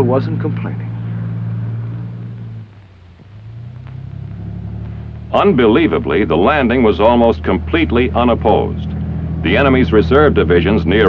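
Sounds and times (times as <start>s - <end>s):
vehicle engines droning: 0.0s - 11.0s.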